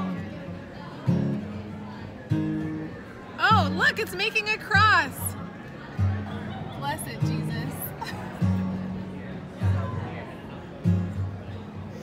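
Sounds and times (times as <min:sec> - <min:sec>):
acoustic guitar plucked notes: 0:00.0 - 0:12.0.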